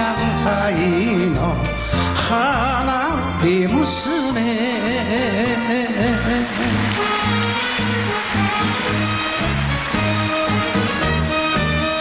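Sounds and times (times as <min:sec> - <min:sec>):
instrumental band music: 0:00.0 - 0:12.0.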